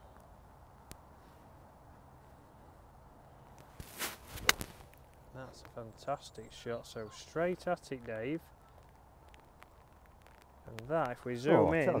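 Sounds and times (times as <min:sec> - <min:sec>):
faint outdoor background hum: 0:00.0 - 0:12.0
golf club swish: 0:03.8 - 0:04.9.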